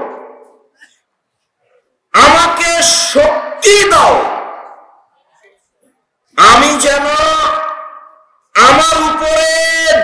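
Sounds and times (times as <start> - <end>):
man preaching over loudspeaker: 2.1 - 5.0, 6.3 - 10.0.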